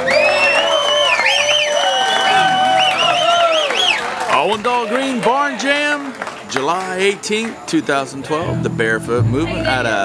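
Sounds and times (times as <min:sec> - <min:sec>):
audience cheering and whooping: 0:00.0 - 0:05.8.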